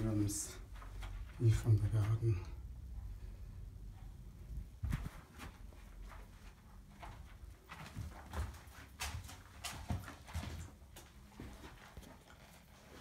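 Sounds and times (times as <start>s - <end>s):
footsteps on carpet: 4.0s - 13.0s.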